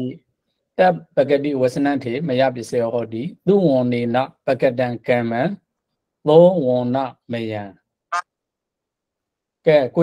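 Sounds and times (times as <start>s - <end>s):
man speaking: 0.0s - 7.9s, 9.6s - 10.0s.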